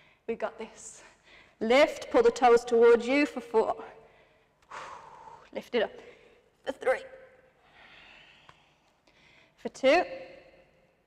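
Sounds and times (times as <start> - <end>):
woman breathing softly: 7.6 - 9.6.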